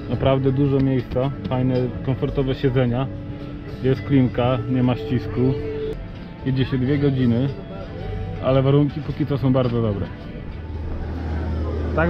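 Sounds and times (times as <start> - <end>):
ferry engine hum: 0.0 - 12.0.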